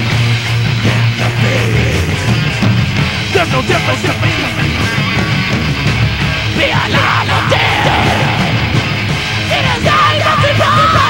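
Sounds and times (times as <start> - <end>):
bass guitar: 0.0 - 11.0
distorted electric guitars: 0.0 - 11.0
drums: 0.0 - 11.0
person yelling vocals: 6.6 - 8.8.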